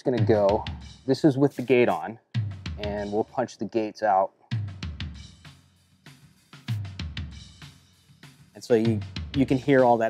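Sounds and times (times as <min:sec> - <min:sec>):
snare drum: 0:06.1 - 0:10.0.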